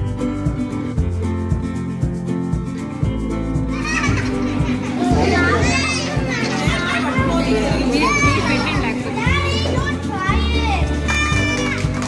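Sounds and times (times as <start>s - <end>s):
music with steady beat: 0.0s - 12.0s
young children chattering: 3.7s - 11.7s.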